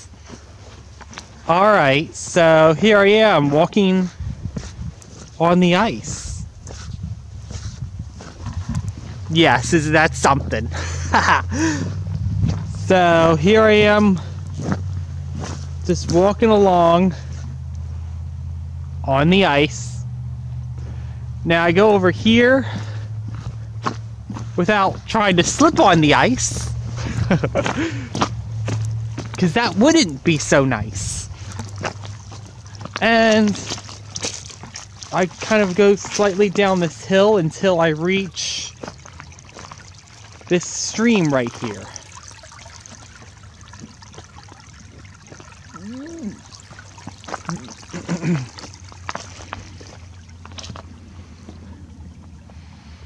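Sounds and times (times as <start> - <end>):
footsteps on frozen grass and ice: 0.0 - 1.5, 2.9 - 9.4, 13.5 - 16.4, 22.8 - 29.8, 31.1 - 51.6
stream trickling among rocks: 0.0 - 19.7, 22.2 - 52.8
short voice sounds: 45.8 - 46.4.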